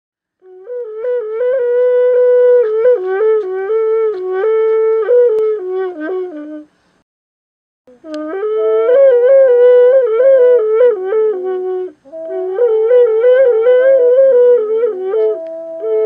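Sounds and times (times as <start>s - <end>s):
bamboo wind instrument melody: 0.4s - 6.7s, 7.9s - 16.0s.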